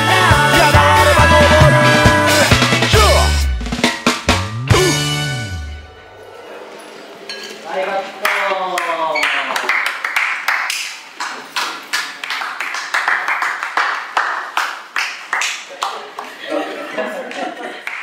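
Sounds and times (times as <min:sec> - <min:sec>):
hand claps: 0:08.2 - 0:16.4, 0:17.3 - 0:18.0.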